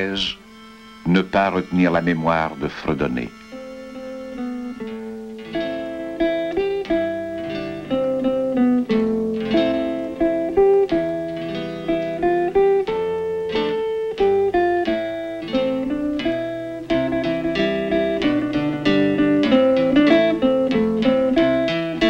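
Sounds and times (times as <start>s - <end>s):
plucked string instrument melody: 0.0s - 22.0s.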